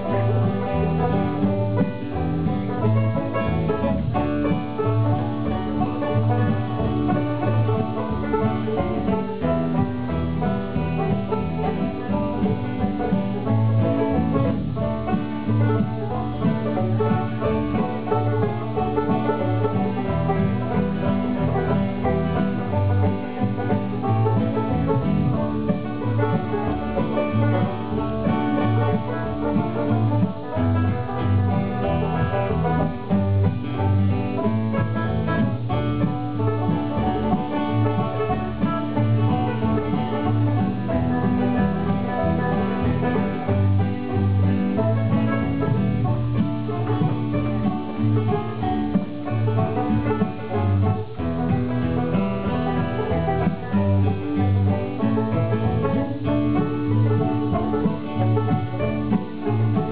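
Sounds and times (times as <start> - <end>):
acoustic guitar: 0.0 - 59.9
banjo picking: 0.0 - 59.9
bass guitar: 0.0 - 59.9.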